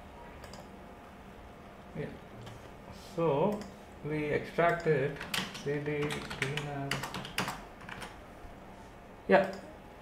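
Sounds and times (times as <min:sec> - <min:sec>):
computer keyboard typing: 0:04.6 - 0:08.2.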